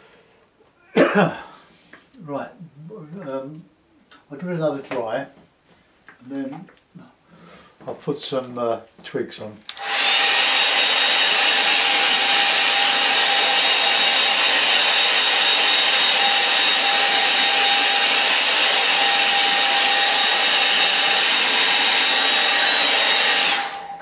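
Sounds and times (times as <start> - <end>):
hair dryer blowing: 9.7 - 24.0.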